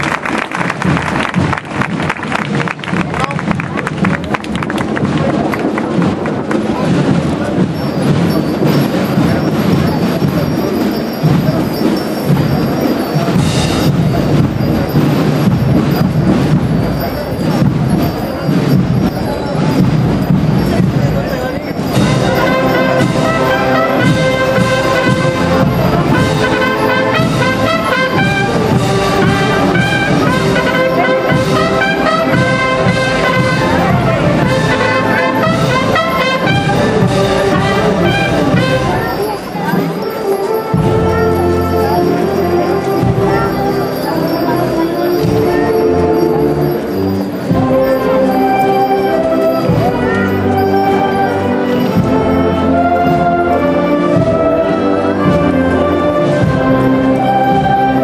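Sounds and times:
applause: 0:00.0 - 0:06.8
wind band playing processional march: 0:00.0 - 0:58.0.

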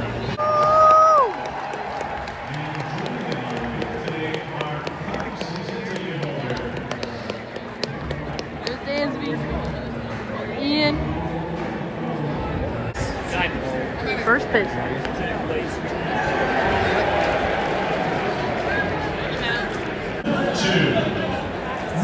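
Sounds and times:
crowd murmuring: 0:02.4 - 0:22.0.

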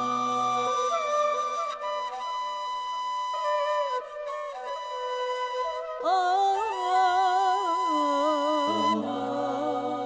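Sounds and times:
ney flute long notes: 0:00.0 - 0:10.0.

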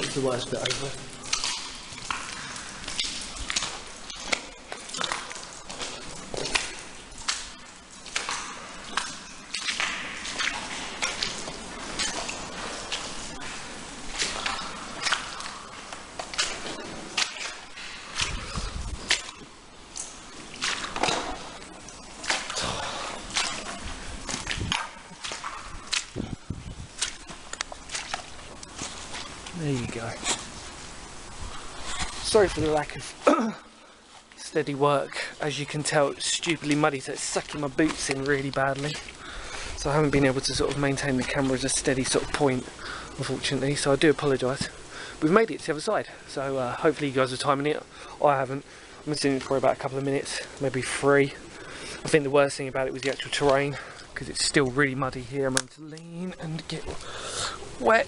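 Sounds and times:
boots squelching through mud: 0:00.0 - 0:45.7.

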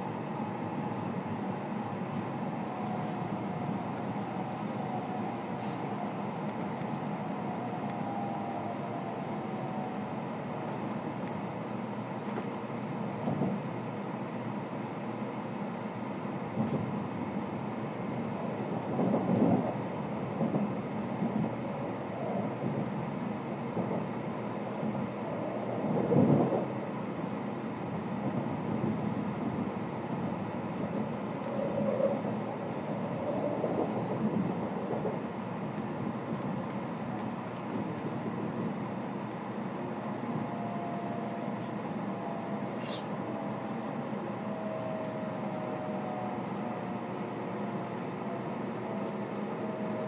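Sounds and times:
train interior rumble: 0:00.0 - 0:50.0.

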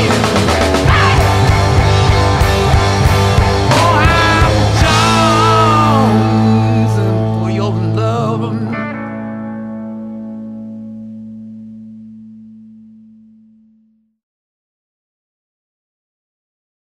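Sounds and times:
electric guitar and bass chord ringing: 0:00.0 - 0:14.2.

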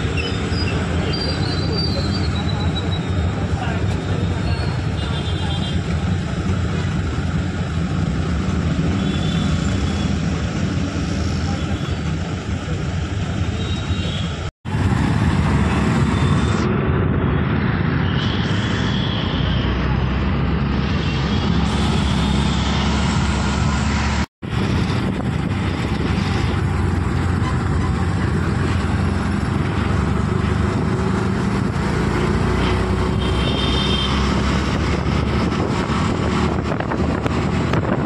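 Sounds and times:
road and wind noise: 0:00.0 - 0:38.0
auto-rickshaw engine running: 0:19.9 - 0:38.0.

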